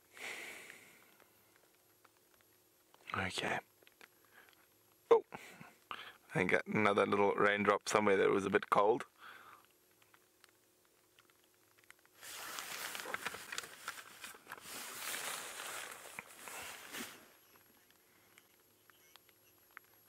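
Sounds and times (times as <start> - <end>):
close rustling crackling with clicks: 0.0 - 20.0.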